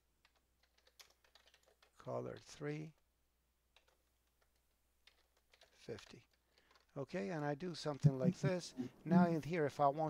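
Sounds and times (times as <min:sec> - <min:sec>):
typing on computer keyboard: 0:00.2 - 0:02.0, 0:03.7 - 0:06.9.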